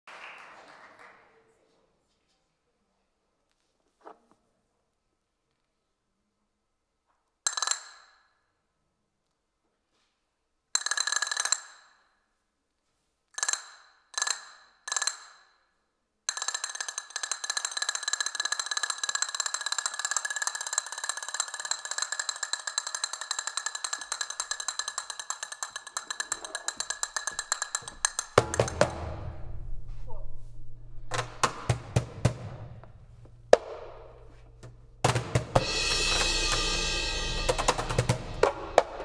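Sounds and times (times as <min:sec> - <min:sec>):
castanets clacking: 0:16.4 - 0:28.8.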